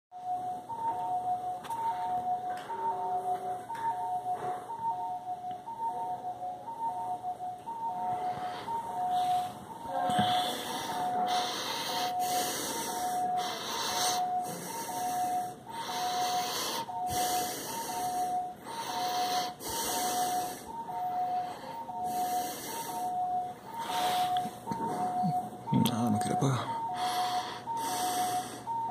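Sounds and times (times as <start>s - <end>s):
alarm beeping two notes: 0.2s - 28.9s.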